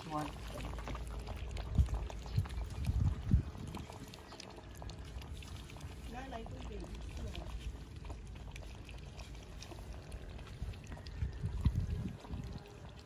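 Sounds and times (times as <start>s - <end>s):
puppies lapping at metal tray: 0.0s - 13.0s
dull low thumps: 0.8s - 4.0s.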